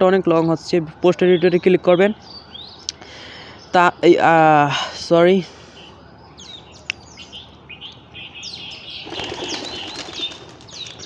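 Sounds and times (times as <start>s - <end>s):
small birds chirping: 0.3s - 4.0s, 5.7s - 11.0s.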